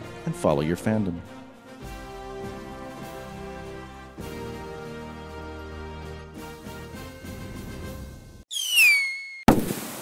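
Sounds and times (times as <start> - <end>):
falling whistle: 8.5 - 9.5
bang with hiss: 9.5 - 10.0.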